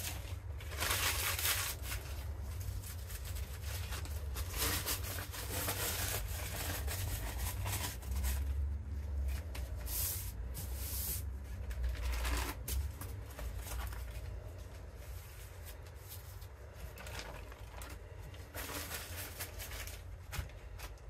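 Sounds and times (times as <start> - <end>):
plastic bag crinkling: 0.0 - 8.6, 15.2 - 21.0.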